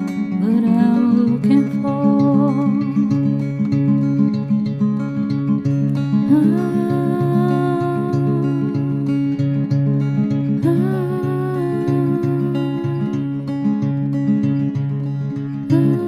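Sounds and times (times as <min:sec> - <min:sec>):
acoustic guitar picking: 0:00.0 - 0:16.0
person humming: 0:06.3 - 0:08.7, 0:10.6 - 0:13.2, 0:15.7 - 0:16.0.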